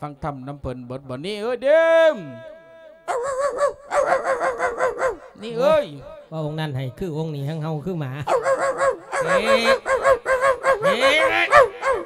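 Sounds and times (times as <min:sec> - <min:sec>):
man imitating dog yelps: 0:01.7 - 0:06.3, 0:08.3 - 0:12.0
man imitating dog whine: 0:03.1 - 0:06.3, 0:08.3 - 0:12.0.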